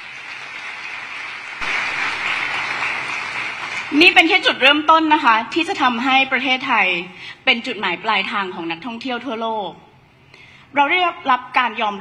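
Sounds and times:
audience applauding: 0:00.0 - 0:04.4.

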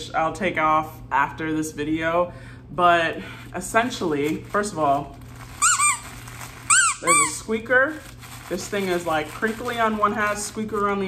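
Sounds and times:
dog toy squeaks: 0:05.6 - 0:07.4.

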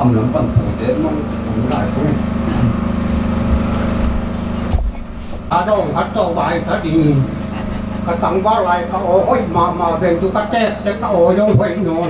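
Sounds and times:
low hum: 0:00.0 - 0:12.0
microphone bump: 0:03.4 - 0:05.5.

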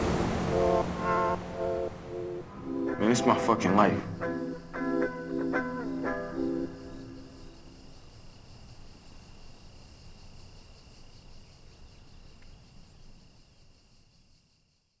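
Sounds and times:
guitar music: 0:00.0 - 0:07.3
crickets chirping: 0:00.0 - 0:15.0.

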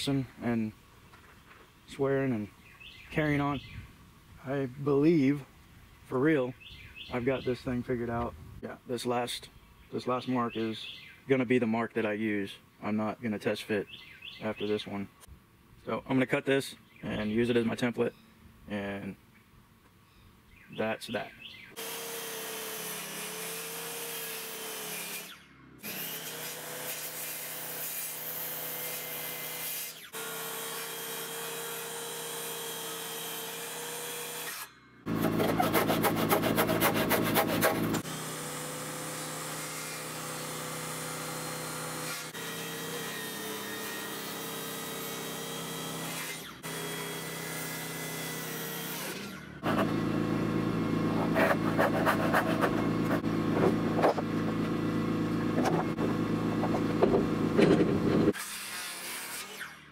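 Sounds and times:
power saws cutting wood: 0:21.8 - 0:59.9.

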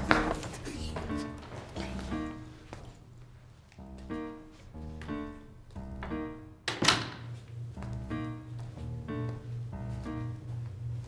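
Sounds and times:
background music: 0:00.0 - 0:02.9, 0:03.8 - 0:11.0
wooden door shutting: 0:05.9 - 0:07.3.

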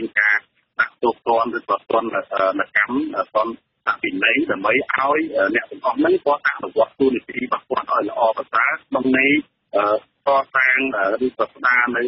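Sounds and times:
person talking radio-like: 0:00.0 - 0:12.0.

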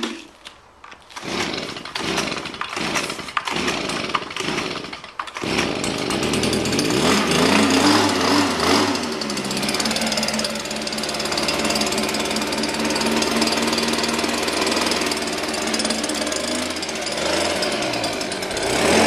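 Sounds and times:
small engine sputtering and revving: 0:01.2 - 0:19.0.

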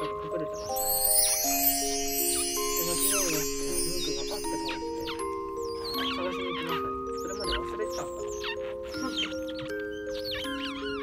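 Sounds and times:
background music with held notes: 0:00.0 - 0:11.0
otter pups squeaking: 0:00.0 - 0:11.0.

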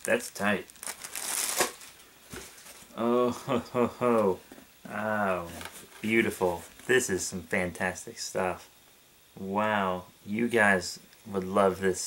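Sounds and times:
plastic packing crinkling: 0:00.0 - 0:02.9.

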